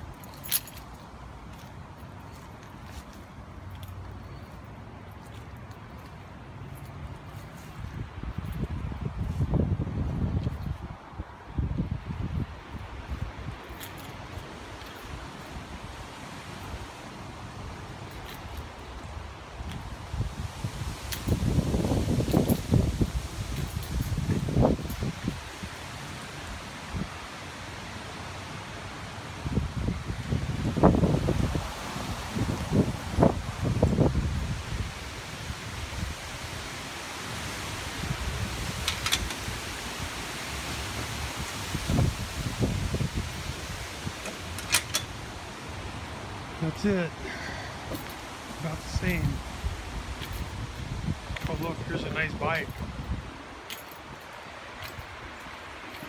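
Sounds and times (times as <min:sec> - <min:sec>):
wind buffeting microphone: 0:07.6 - 0:25.9, 0:29.4 - 0:36.8, 0:37.4 - 0:55.9.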